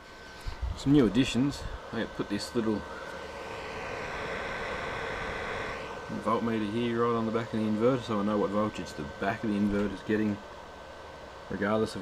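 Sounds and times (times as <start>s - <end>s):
high whine: 0.0s - 12.0s
power inverter whirring: 0.0s - 12.0s.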